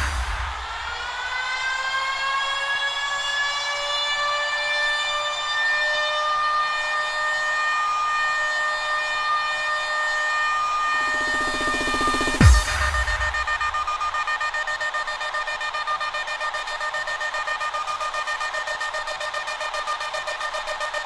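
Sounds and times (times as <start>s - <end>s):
rising siren-like synth tone: 0.0s - 21.0s.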